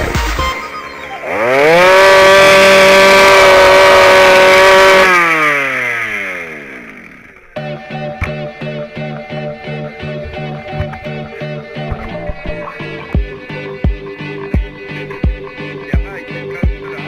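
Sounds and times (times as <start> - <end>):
moped engine revving: 1.0 - 17.0.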